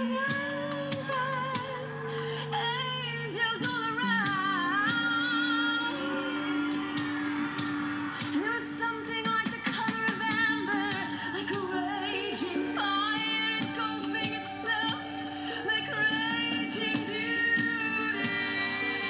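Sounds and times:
woman singing with vibrato: 0:00.0 - 0:19.0.

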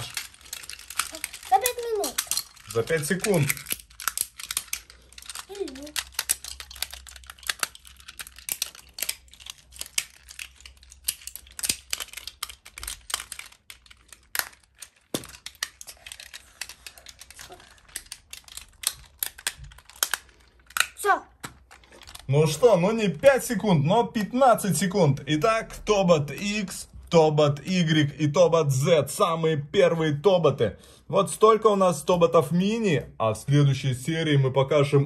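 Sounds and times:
small plastic clicks and snaps: 0:00.0 - 0:22.3.

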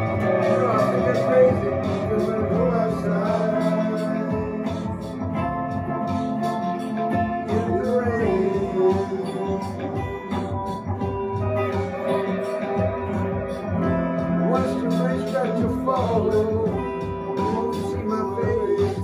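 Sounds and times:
electric guitar playing: 0:00.0 - 0:19.0
slide guitar gliding notes: 0:00.0 - 0:19.0.

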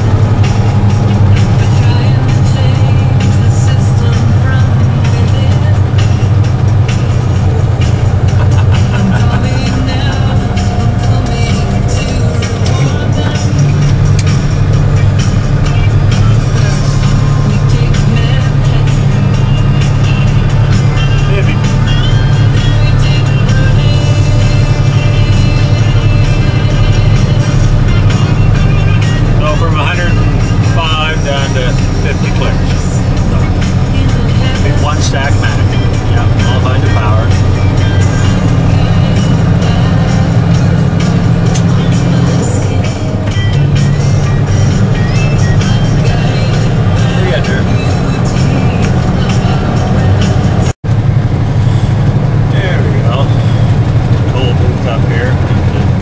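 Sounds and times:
music playing: 0:00.0 - 0:56.0
truck diesel engine droning: 0:00.0 - 0:56.0
person speaking: 0:29.3 - 0:37.6.

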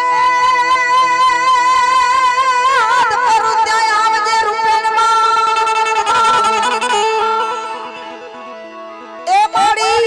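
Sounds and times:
harmonium playing devotional melody: 0:00.0 - 0:10.0.

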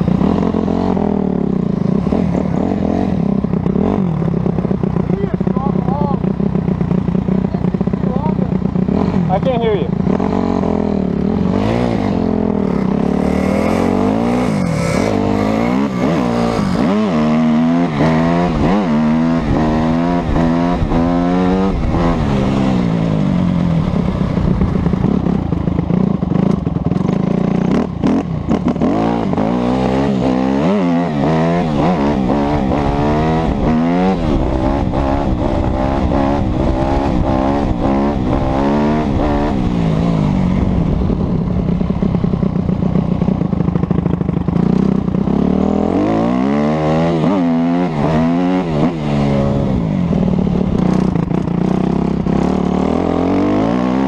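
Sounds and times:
motorcycle engine revving: 0:00.0 - 0:54.0.

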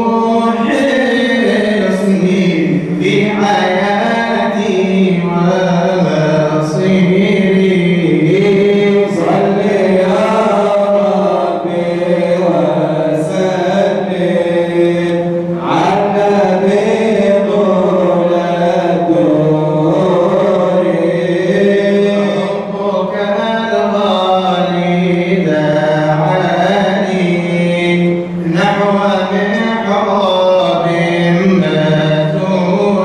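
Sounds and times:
men chanting devotional song: 0:00.0 - 0:33.0.

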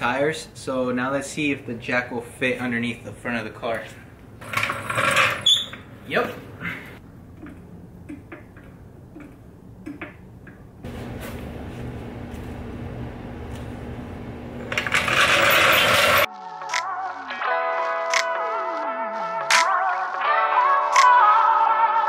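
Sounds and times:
steady hum: 0:10.8 - 0:15.4.

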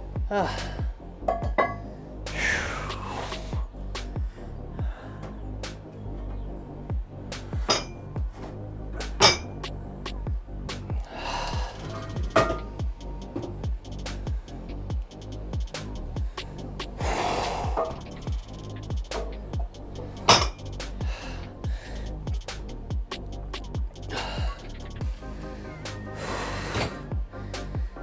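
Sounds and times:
music with steady beat: 0:00.0 - 0:28.0
weight plates clinking: 0:01.3 - 0:01.8, 0:07.6 - 0:08.1, 0:09.2 - 0:09.6, 0:12.0 - 0:12.7.

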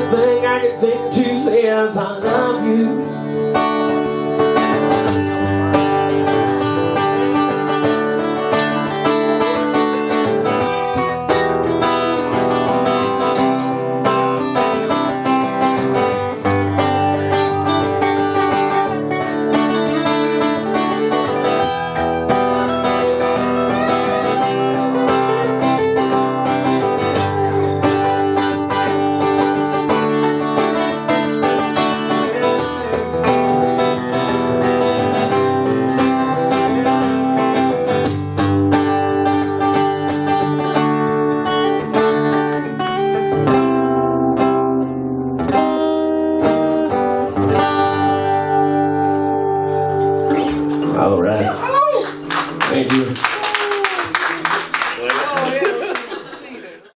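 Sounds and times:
acoustic guitar strumming: 0:00.0 - 0:53.2.

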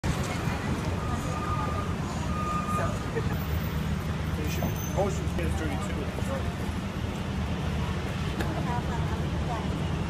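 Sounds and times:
low traffic rumble: 0:00.0 - 0:10.0
passersby's voices: 0:00.0 - 0:10.0.

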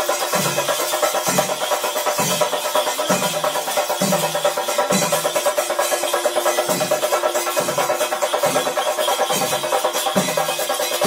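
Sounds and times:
fast drumming: 0:00.0 - 0:11.0.

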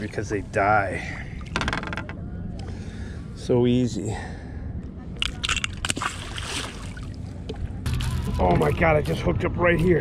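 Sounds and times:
wind and water against hull: 0:00.0 - 0:10.0.

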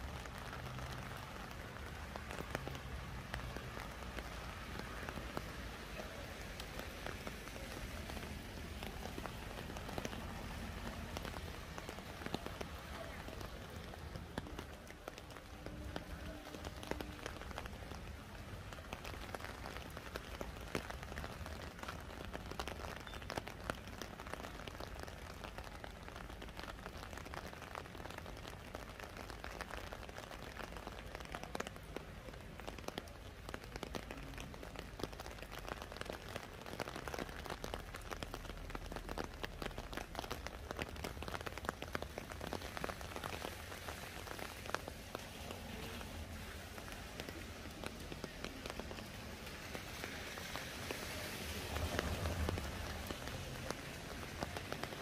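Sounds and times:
rain drops ticking: 0:00.0 - 0:55.0
rain hiss: 0:00.0 - 0:55.0.

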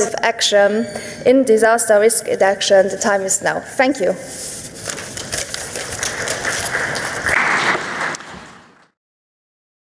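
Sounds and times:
audience applauding: 0:05.4 - 0:08.9.

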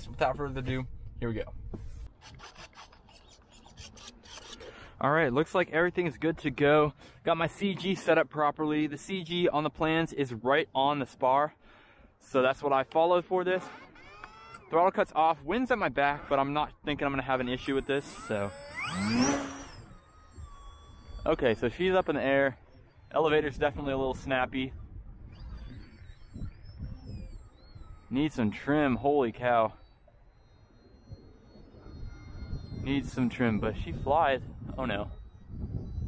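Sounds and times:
electric motor and propeller whine: 0:00.0 - 0:06.6, 0:12.1 - 0:36.0.

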